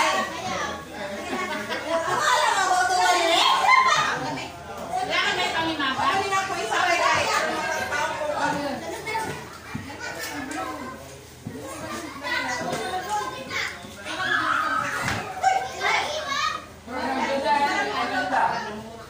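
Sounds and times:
adults talking: 0:00.0 - 0:19.0
children chattering: 0:00.0 - 0:19.0.

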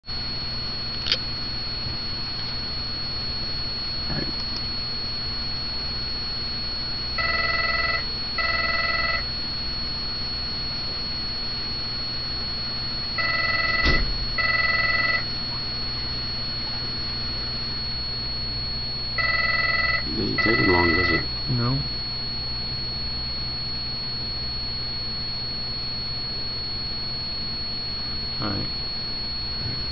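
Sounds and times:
faint high-pitched whine: 0:00.1 - 0:29.9
low hum: 0:00.1 - 0:29.9
sharp click: 0:01.0 - 0:01.2
telephone ringing: 0:07.1 - 0:09.4, 0:13.1 - 0:15.5, 0:19.1 - 0:21.4.

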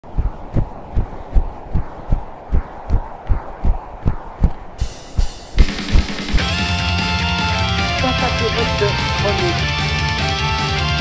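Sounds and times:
faint steady rush: 0:00.0 - 0:06.4
deep pulsing thumps: 0:00.0 - 0:08.2
theme song: 0:04.8 - 0:11.0.

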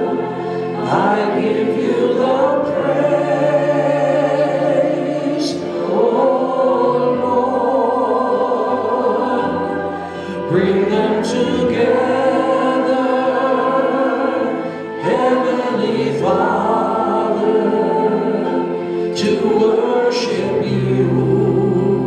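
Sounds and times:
group singing worship song: 0:00.0 - 0:22.0
keyboard: 0:00.0 - 0:22.0.

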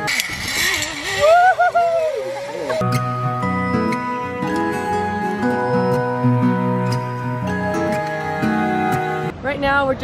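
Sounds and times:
zip-line trolley whirring: 0:00.0 - 0:02.8
person whooping: 0:01.1 - 0:02.8.

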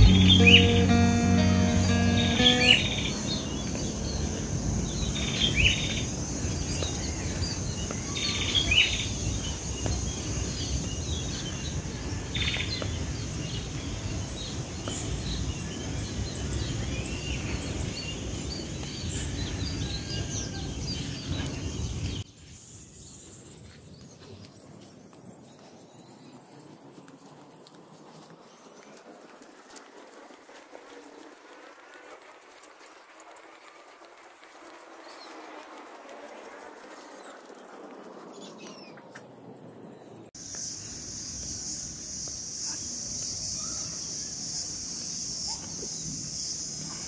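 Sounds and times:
birds chirping: 0:00.0 - 0:22.4.

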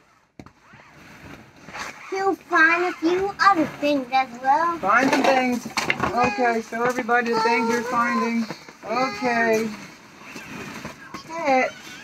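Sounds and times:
plastic balls rustling and clattering: 0:04.8 - 0:12.0.

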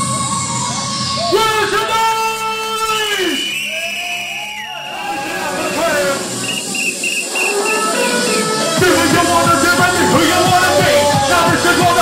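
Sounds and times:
hardcore rave music: 0:00.0 - 0:12.0.

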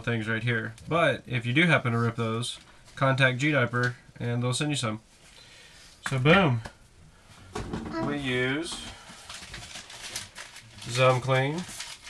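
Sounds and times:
plastic jug knocks and rustling: 0:07.6 - 0:08.9.

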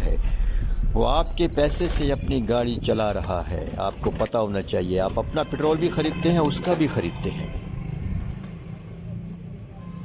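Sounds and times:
car engine humming: 0:00.0 - 0:09.8.

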